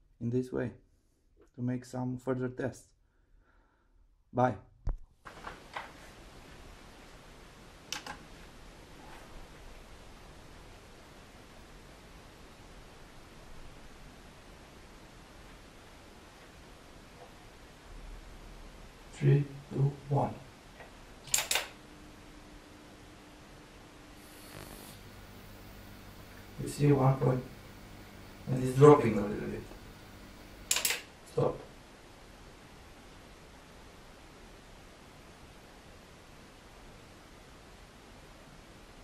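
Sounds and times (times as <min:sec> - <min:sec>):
faint room tone hiss: 0:00.0 - 0:39.0
low electrical hum: 0:05.2 - 0:39.0
short hiss: 0:24.2 - 0:31.0
short click: 0:30.7 - 0:31.0.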